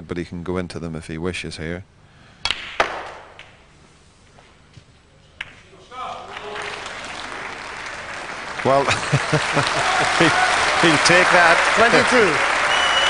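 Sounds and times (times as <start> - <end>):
audience applauding: 6.1 - 13.0
audience murmuring: 6.8 - 13.0.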